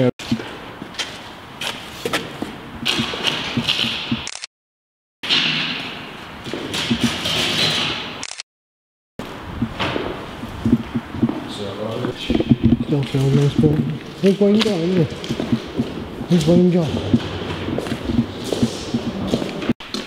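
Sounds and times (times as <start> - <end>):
sharp knocks: 2.8 - 4.3
footsteps on concrete: 10.5 - 20.0.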